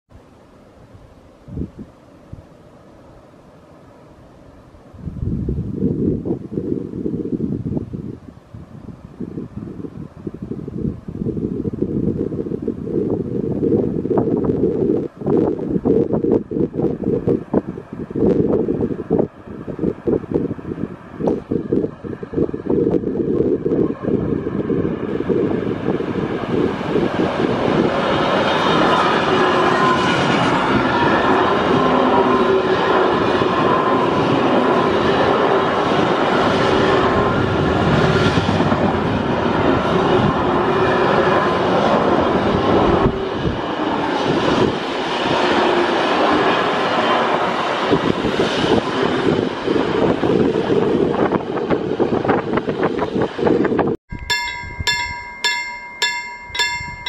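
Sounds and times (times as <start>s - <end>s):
freight train rolling past: 9.0s - 57.0s.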